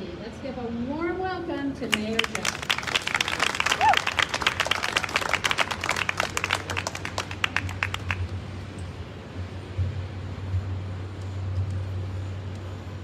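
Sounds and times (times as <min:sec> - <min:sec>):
low steady rumble: 0:00.0 - 0:13.0
audience applauding: 0:01.9 - 0:08.3.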